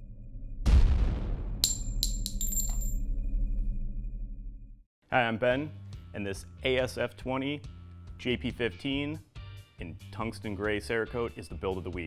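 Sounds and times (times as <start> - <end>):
sharp ringing clinks: 1.6 - 3.0.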